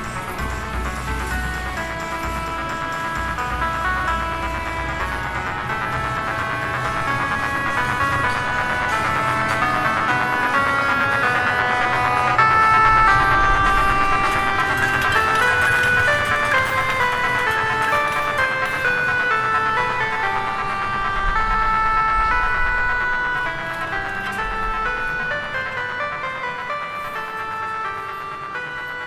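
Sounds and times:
dungeon synth music: 0:00.0 - 0:29.0.

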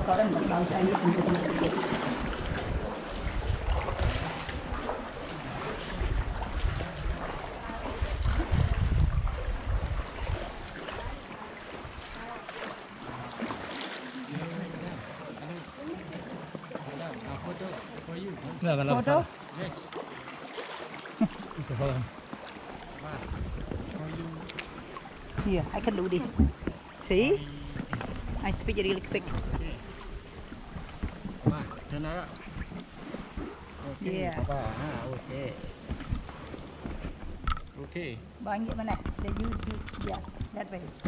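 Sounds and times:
canoe paddle splashing water: 0:00.0 - 0:41.0
wind buffeting microphone: 0:02.1 - 0:11.2, 0:23.0 - 0:24.3, 0:25.2 - 0:34.8.

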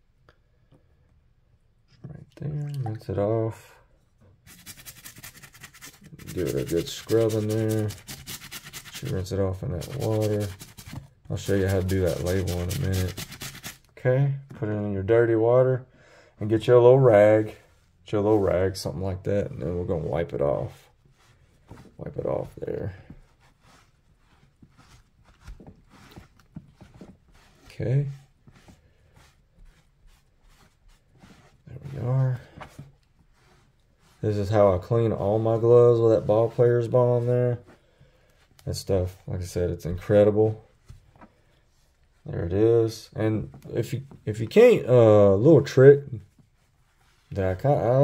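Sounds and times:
cloth rubbing wet leather: 0:04.4 - 0:13.9, 0:19.5 - 0:41.0
toothbrush scrubbing: 0:04.5 - 0:13.9, 0:23.4 - 0:32.0.

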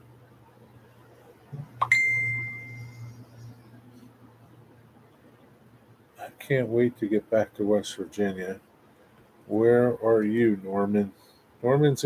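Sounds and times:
steady low hum: 0:00.0 - 0:12.0
bell-like ding: 0:01.8 - 0:03.2.

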